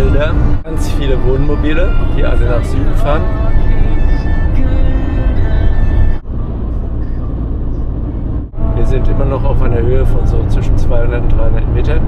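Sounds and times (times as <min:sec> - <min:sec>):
background music: 0:00.0 - 0:12.0
low rumble of camper driving: 0:00.0 - 0:12.0.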